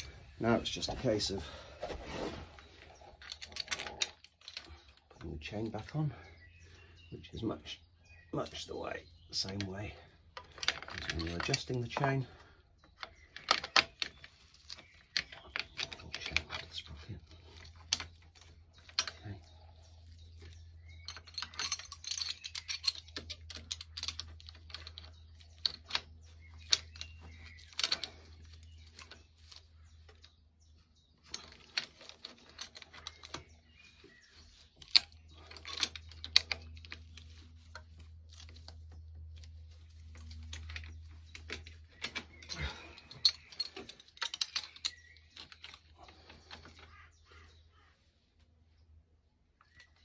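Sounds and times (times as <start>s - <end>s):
drive chain clinking on sprocket: 9.4s - 30.3s, 31.2s - 46.7s.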